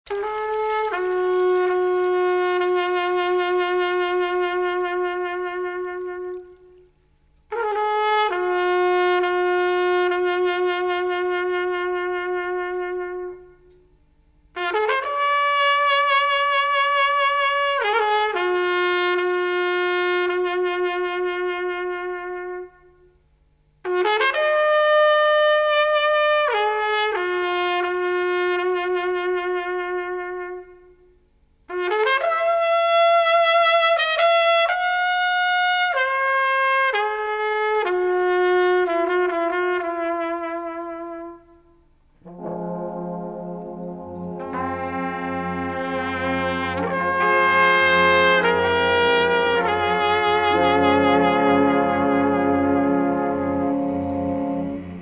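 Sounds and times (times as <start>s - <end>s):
lead horn melody: 0.0s - 6.8s, 7.5s - 13.8s, 14.5s - 23.1s, 23.8s - 31.0s, 31.7s - 55.0s
brass band playing: 0.1s - 6.5s, 7.5s - 13.7s, 14.6s - 23.0s, 23.8s - 30.9s, 31.7s - 41.5s, 42.2s - 55.0s.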